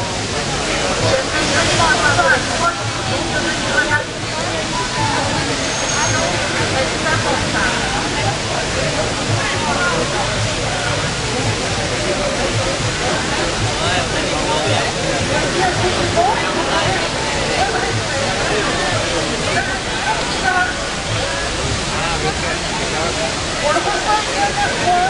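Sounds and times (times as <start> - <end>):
fountain water rushing: 0.0 - 25.0
people talking: 0.0 - 25.0.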